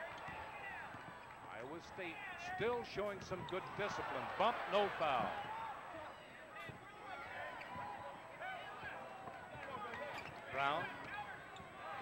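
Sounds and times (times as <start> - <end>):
arena crowd hubbub: 0.0 - 12.0.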